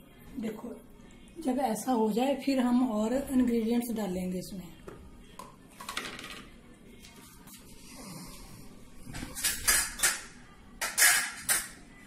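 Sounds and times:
steel kitchenware clattering: 9.4 - 11.8.

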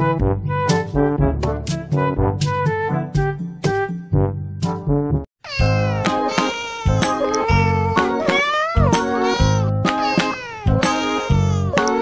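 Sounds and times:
cat meowing: 5.5 - 12.0.

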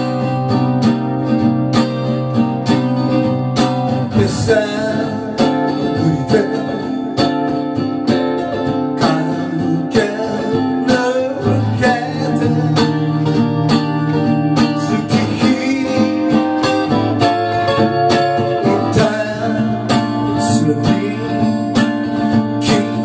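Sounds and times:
man singing: 0.0 - 0.8, 3.9 - 7.6, 8.7 - 23.0
acoustic guitar strumming: 0.0 - 23.0.

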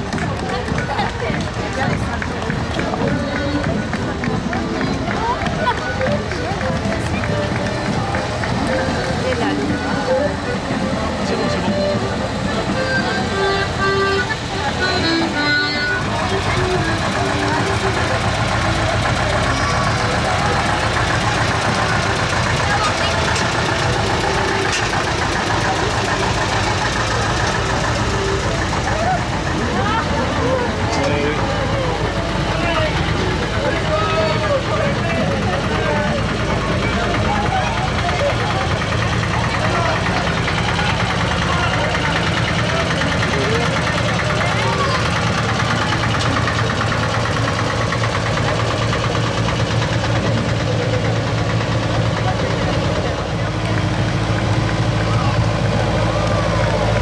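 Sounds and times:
crowd chatter: 0.0 - 57.0
folk dance music: 0.0 - 57.0
tractor engine passing: 0.0 - 57.0.

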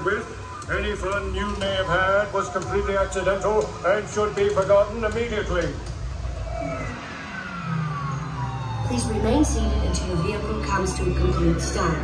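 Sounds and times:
low hum: 0.0 - 12.0
ride whine falling in pitch: 0.0 - 12.0.

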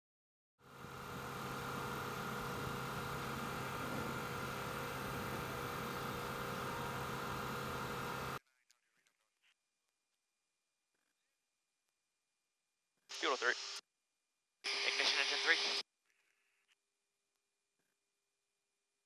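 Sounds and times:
jet aircraft rushing hum: 0.7 - 8.4.

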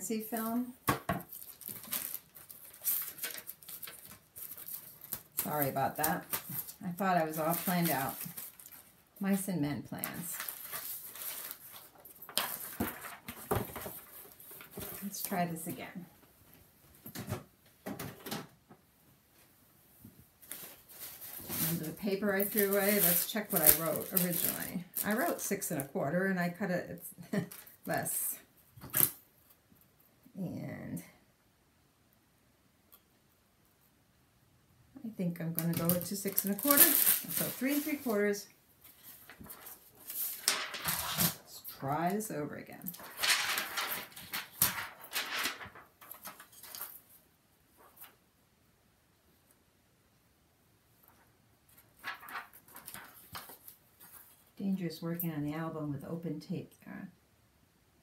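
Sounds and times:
paper and plastic rustling: 0.4 - 15.8, 20.4 - 25.9, 35.4 - 42.2, 42.8 - 48.2, 51.0 - 54.6
paper rustling and sliding: 20.4 - 25.3, 35.7 - 41.8, 42.9 - 47.1, 51.8 - 54.4.

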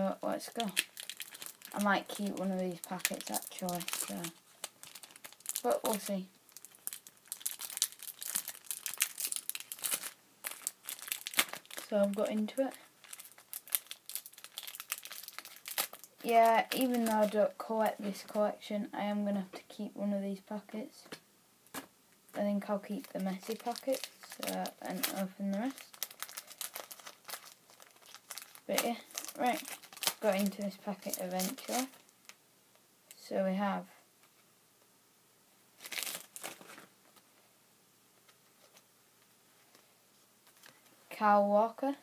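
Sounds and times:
wrapper crinkling and tearing: 0.5 - 17.4, 22.9 - 32.4, 35.8 - 36.9.

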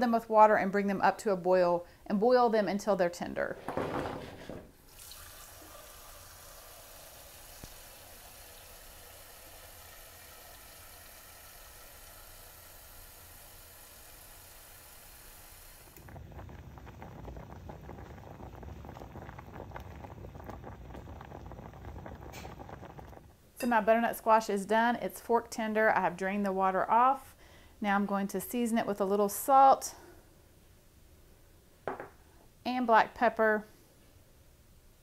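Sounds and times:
pot boiling hard: 3.8 - 23.5
tap water running into saucepan: 4.9 - 15.4.

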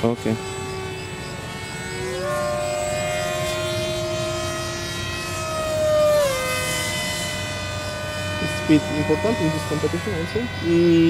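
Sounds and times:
model airplane motor whining: 0.0 - 11.0.

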